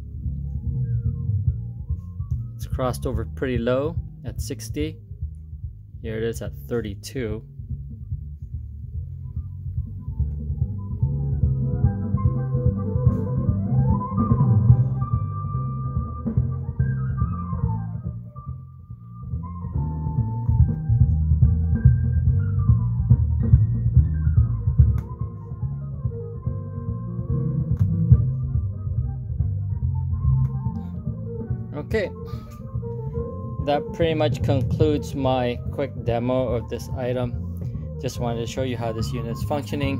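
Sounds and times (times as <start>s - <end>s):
deep bass-heavy music: 0.0s - 39.9s.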